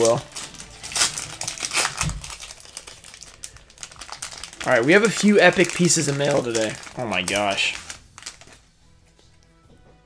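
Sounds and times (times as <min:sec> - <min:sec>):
foil wrapper crinkling: 0:00.0 - 0:08.6.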